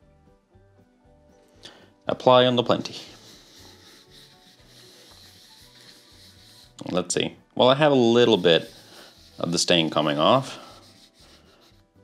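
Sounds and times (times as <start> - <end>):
quiet background music: 0.0 - 12.0
cloth rubbing wood: 2.7 - 6.9, 8.0 - 11.8.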